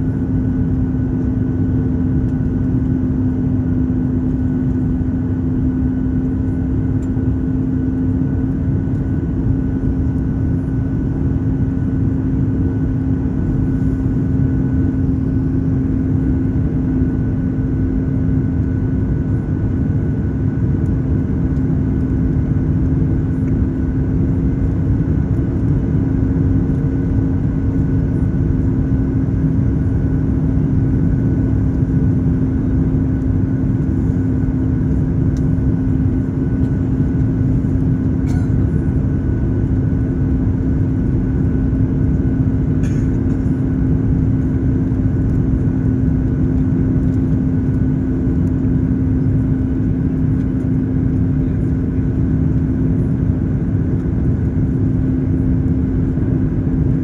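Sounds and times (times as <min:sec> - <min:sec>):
aircraft engine and airflow rush: 0:00.0 - 0:57.0
steady low hum: 0:00.0 - 0:57.0.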